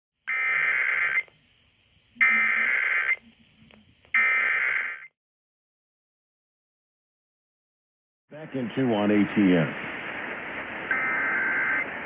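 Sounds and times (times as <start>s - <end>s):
digital data tone bursts: 2.2s - 3.2s, 4.1s - 5.1s, 10.9s - 11.9s.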